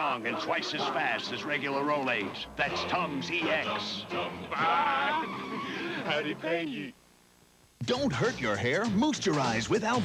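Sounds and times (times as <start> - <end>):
men shouting and cheering: 0.0 - 6.7.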